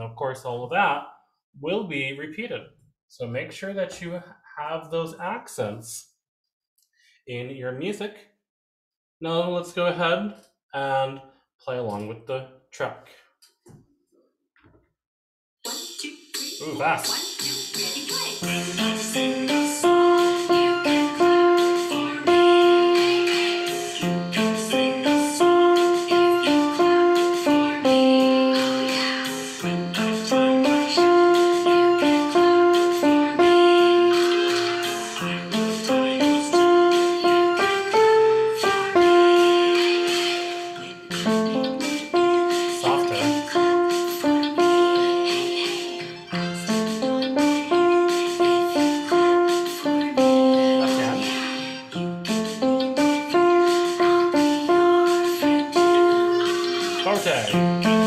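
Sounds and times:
recorded accompaniment track: 0:15.6 - 0:58.0
piano melody: 0:18.4 - 0:58.0.

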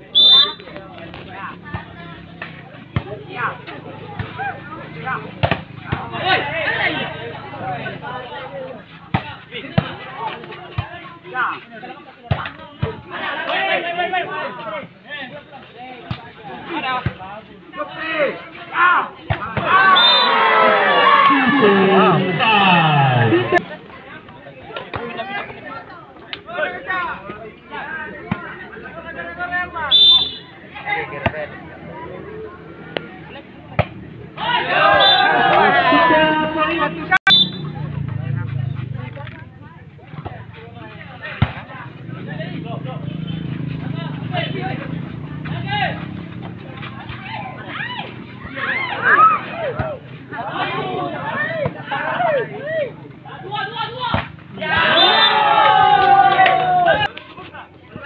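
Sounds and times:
crowd noise: 0:00.0 - 0:58.0
spectators chatting: 0:00.0 - 0:58.0
person shouting loudly: 0:20.5 - 0:23.6.

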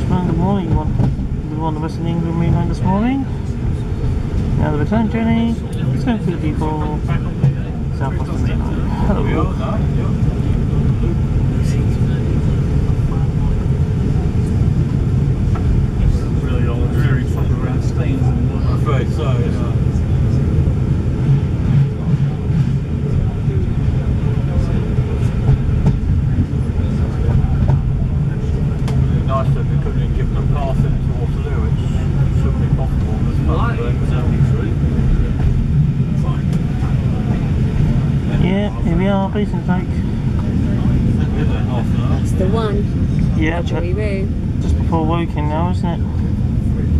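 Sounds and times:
faint passenger voices: 0:00.0 - 0:46.9
train wheels rumbling on track: 0:00.0 - 0:46.9.

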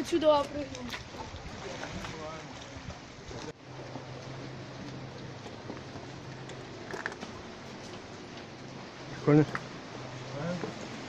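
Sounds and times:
surf: 0:00.0 - 0:11.0
wind: 0:00.0 - 0:11.0.

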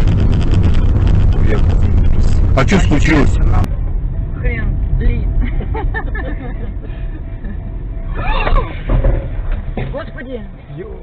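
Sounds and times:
car engine and road rumble: 0:00.0 - 0:11.0
people talking: 0:01.3 - 0:03.7
music: 0:03.8 - 0:11.0.

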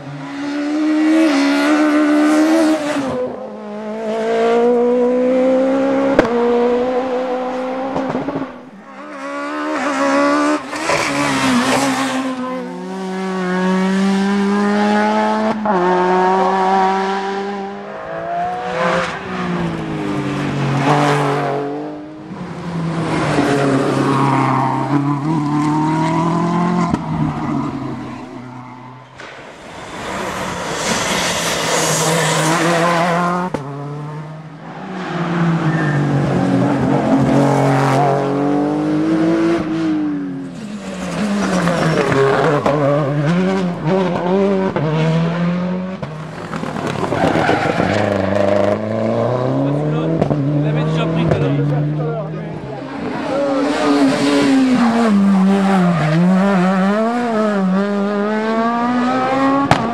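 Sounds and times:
rally car engines revving past: 0:00.0 - 0:59.9.

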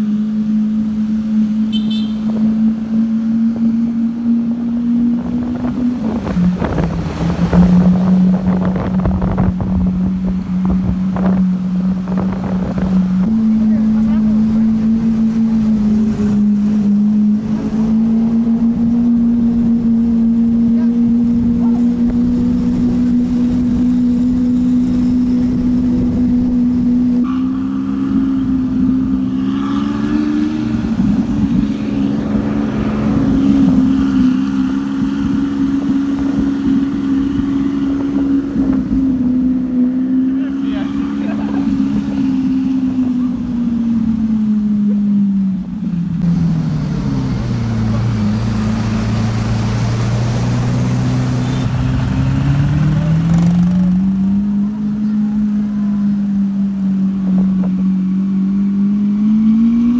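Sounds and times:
car engine droning: 0:00.0 - 0:59.9.

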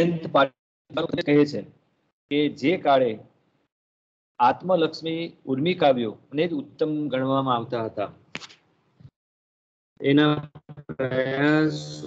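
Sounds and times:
man lecturing: 0:00.0 - 0:01.7, 0:02.3 - 0:03.3, 0:04.4 - 0:08.2, 0:10.0 - 0:12.0.

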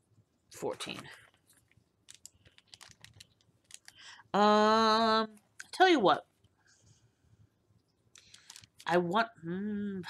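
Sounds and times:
wrapped packets clicking and tapping: 0:00.9 - 0:04.1, 0:08.2 - 0:08.9.

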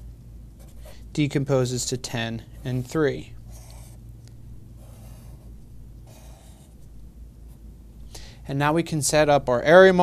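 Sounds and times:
marker scratch: 0:00.6 - 0:01.0, 0:02.4 - 0:04.0, 0:04.8 - 0:07.6
marker drawing on paper: 0:02.5 - 0:04.0, 0:04.8 - 0:06.9.

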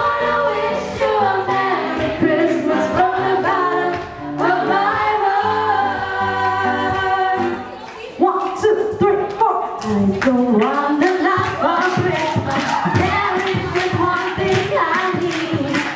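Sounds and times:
group singing in harmony: 0:00.0 - 0:07.7, 0:10.5 - 0:15.9.

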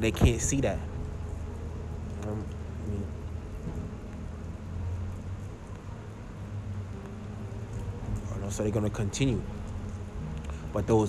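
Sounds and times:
light hiss: 0:00.0 - 0:11.0
low background rumble: 0:00.0 - 0:11.0.

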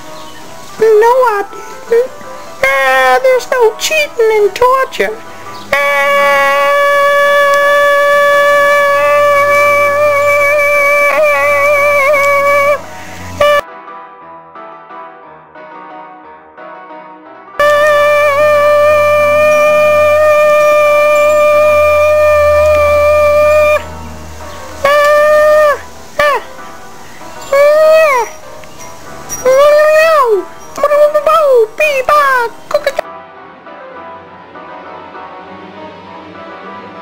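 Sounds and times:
loud horn blasts: 0:05.6 - 0:13.6, 0:17.6 - 0:26.6
loud held droning note: 0:05.7 - 0:13.6, 0:17.6 - 0:26.4.

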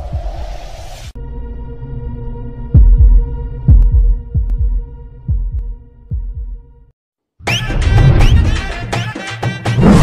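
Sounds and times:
heartbeat thumps: 0:02.8 - 0:06.6.

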